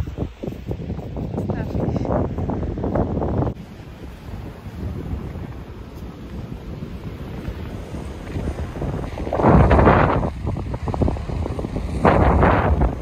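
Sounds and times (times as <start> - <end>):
surf washing: 0.0 - 13.0
wind buffeting microphone: 0.0 - 13.0.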